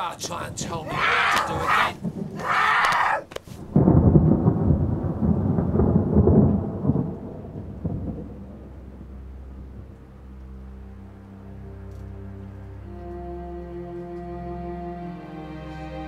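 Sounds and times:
deep rumble: 3.6 - 13.0.

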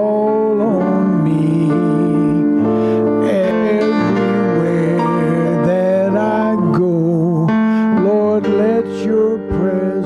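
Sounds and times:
worship song with instruments: 0.0 - 10.0.

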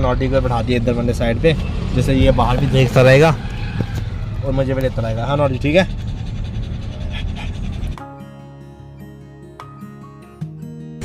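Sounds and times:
small dog panting rapidly: 3.8 - 8.0
background music: 7.8 - 11.0.

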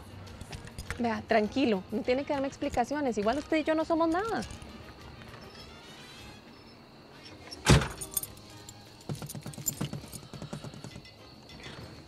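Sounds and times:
car door slamming: 7.6 - 8.1.

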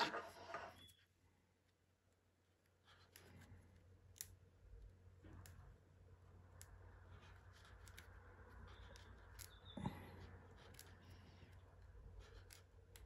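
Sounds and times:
cord threading scraping: 0.0 - 1.0.

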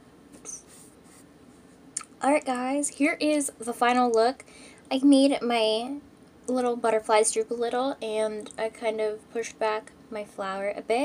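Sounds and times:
hand rubbing recording device: 0.3 - 1.9.

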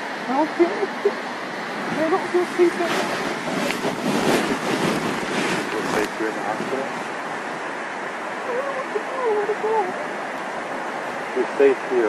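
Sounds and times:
rushing noise on microphone: 0.0 - 12.0.

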